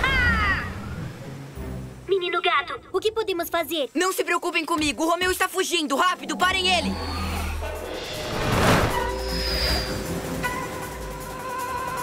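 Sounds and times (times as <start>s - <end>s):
loud whoosh effect: 6.8s - 10.4s.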